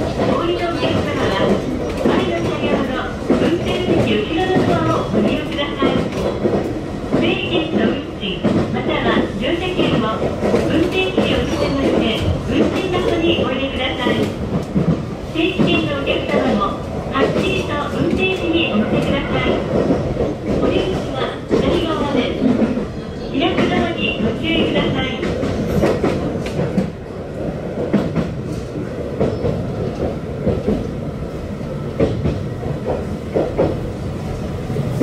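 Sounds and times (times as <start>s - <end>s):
train wheels rumbling on rails: 0.0s - 35.0s.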